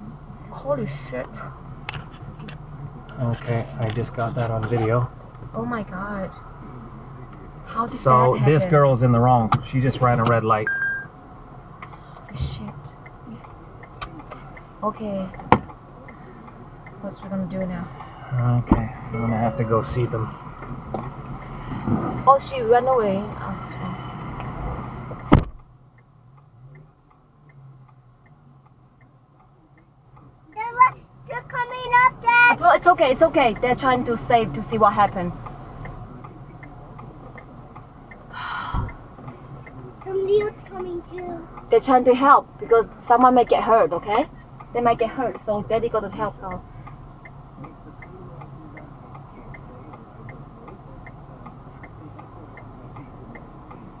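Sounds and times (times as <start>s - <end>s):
car cabin noise: 0.0s - 54.0s
indicator relay ticking: 9.4s - 17.9s, 22.3s - 54.0s
car door shutting: 24.7s - 25.6s.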